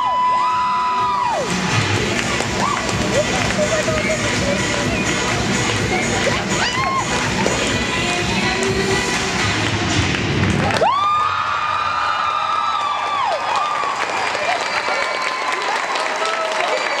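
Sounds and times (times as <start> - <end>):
crowd cheering: 0.0 - 8.7, 10.4 - 17.0
show music: 0.0 - 11.0
crowd applauding: 0.0 - 17.0.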